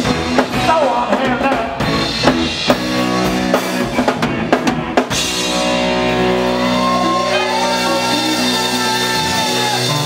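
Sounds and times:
sustained electric guitars: 0:00.0 - 0:10.0.

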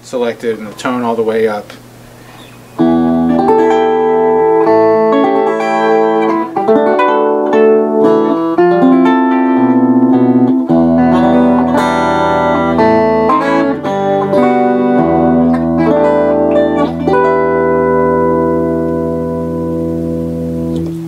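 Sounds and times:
electric twelve-string guitar: 0:02.3 - 0:21.0.

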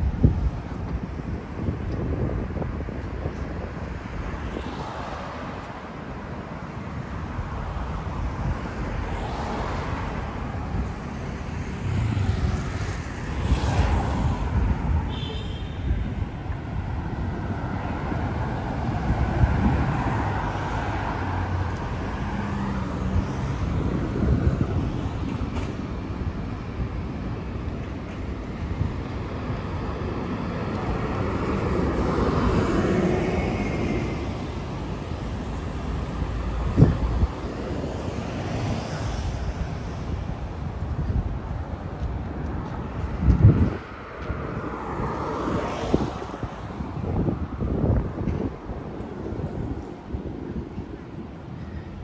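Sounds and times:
road traffic passing: 0:00.0 - 0:52.0.

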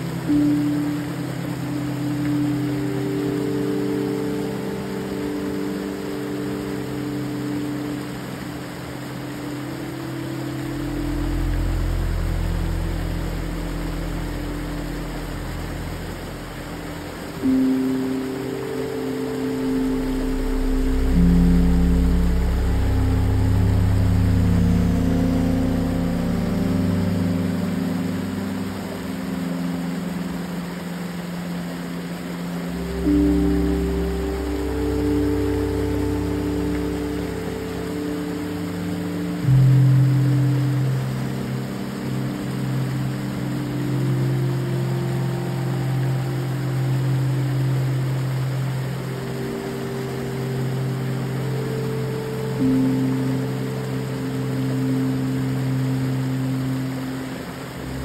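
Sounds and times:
slow ambient music: 0:00.0 - 0:58.0
water rushing in creek cascade: 0:00.0 - 0:58.0.

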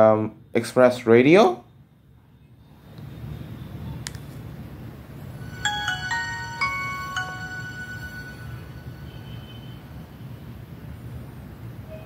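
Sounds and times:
phone startup jingle: 0:05.4 - 0:09.4.

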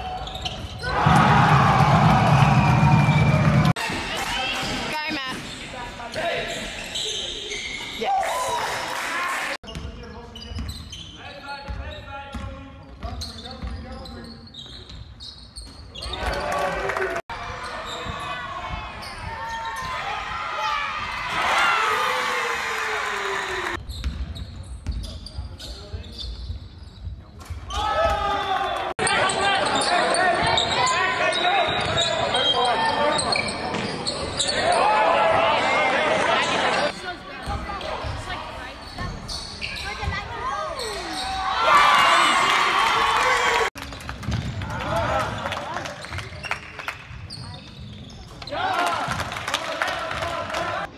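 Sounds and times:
players and spectators shouting: 0:00.0 - 0:04.0, 0:16.2 - 0:23.8, 0:34.4 - 0:36.9, 0:39.9 - 0:43.7.

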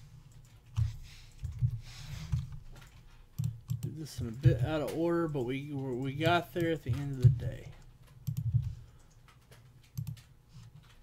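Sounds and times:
computer keyboard typing: 0:00.3 - 0:11.0.

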